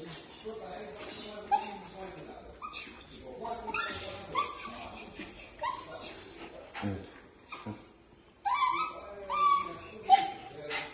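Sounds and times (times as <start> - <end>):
small dog whining: 8.4 - 10.4.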